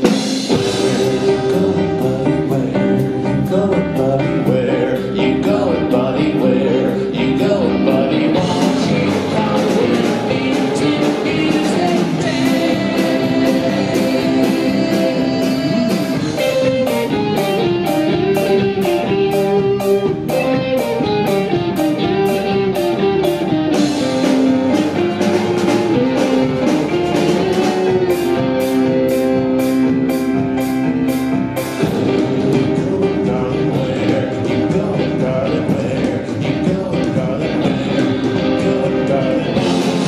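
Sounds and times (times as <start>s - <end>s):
rock band playing live: 0.0s - 40.0s.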